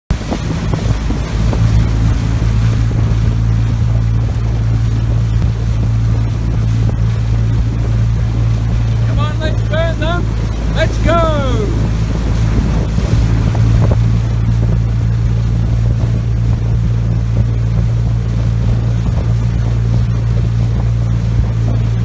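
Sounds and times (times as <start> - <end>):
outboard motor running: 0.1 - 22.0
person shouting: 10.8 - 11.9.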